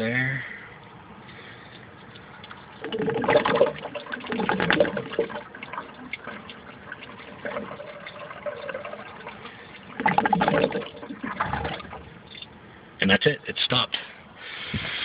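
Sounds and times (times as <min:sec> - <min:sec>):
siphon gurgling and sucking air: 0:02.8 - 0:12.3.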